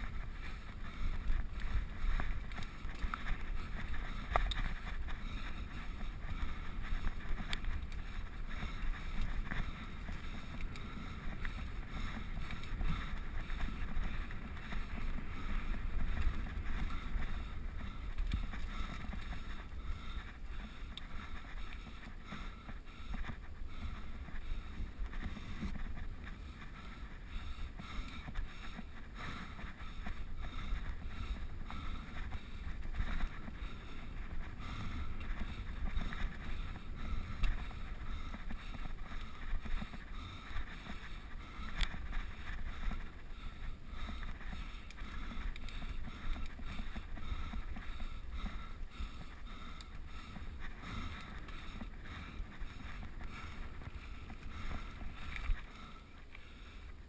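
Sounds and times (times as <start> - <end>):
bike rattling over bumps: 0.0 - 57.0
bike tyre noise: 0.0 - 57.0.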